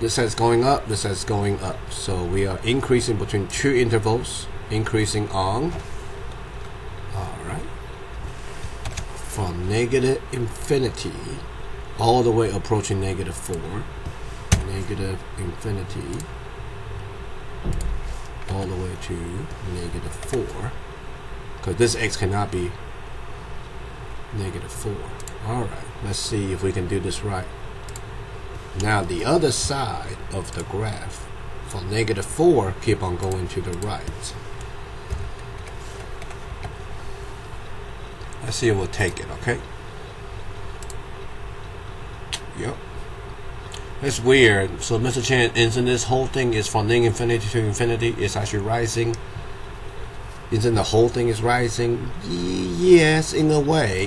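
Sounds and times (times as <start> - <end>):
low background hum: 0.0 - 54.0
keyboard typing and mouse clicks: 27.8 - 28.1, 33.2 - 36.8, 40.8 - 41.0
soft voiced sound: 50.5 - 54.0.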